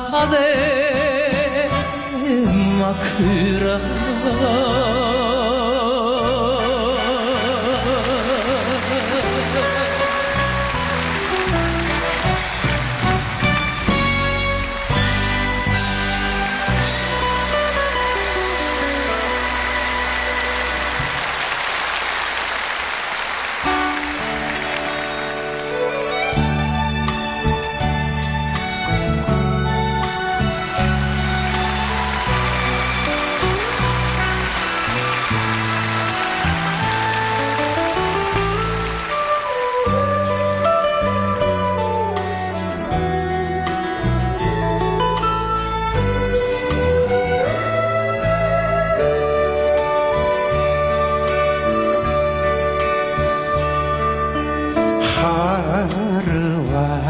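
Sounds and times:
bass line: 0.0s - 21.4s, 23.7s - 57.0s
live band playing ballad: 0.0s - 57.0s.

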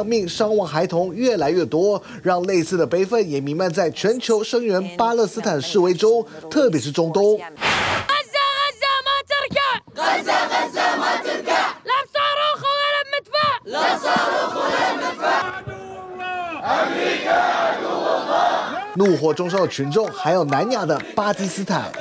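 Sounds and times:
boy shouting into microphones: 8.1s - 9.9s, 11.8s - 13.7s
crowd shouting: 8.1s - 20.8s.

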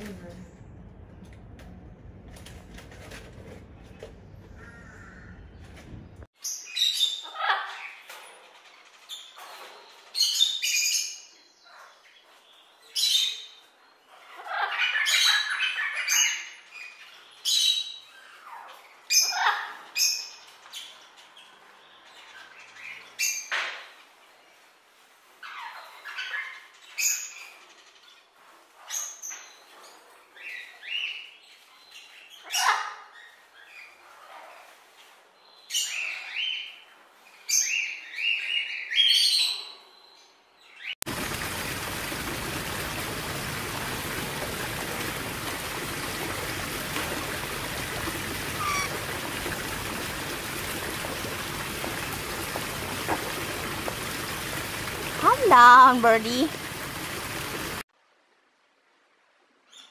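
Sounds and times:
high-pitched bird calls: 48.4s - 49.1s.

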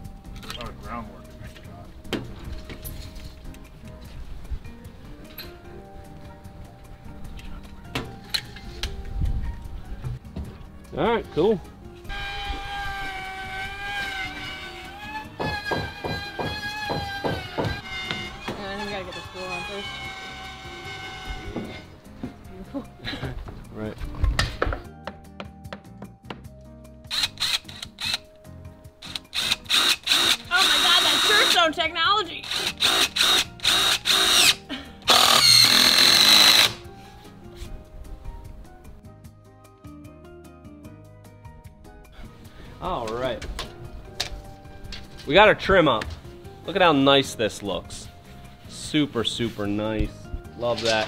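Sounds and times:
knocks: 15.4s - 18.6s
power tool running: 29.0s - 31.6s, 32.4s - 36.8s.

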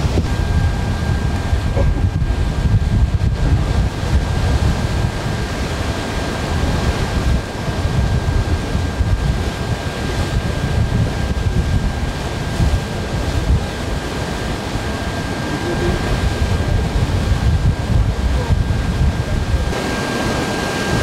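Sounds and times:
faint high whine: 0.0s - 3.3s
sea washing: 0.0s - 21.0s
wind buffeting microphone: 0.0s - 21.0s.

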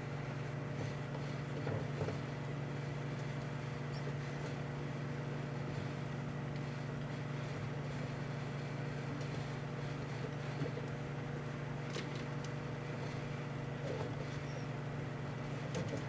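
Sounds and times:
microwave oven humming: 0.0s - 16.0s.

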